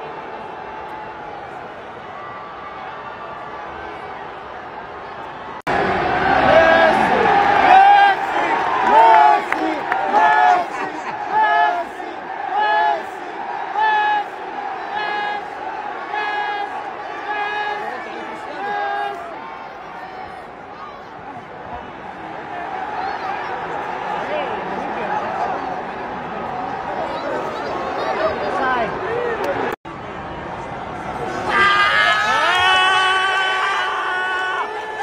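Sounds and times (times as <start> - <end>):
general crowd noise: 0.0 - 35.0
stadium crowd chanting: 5.6 - 28.9.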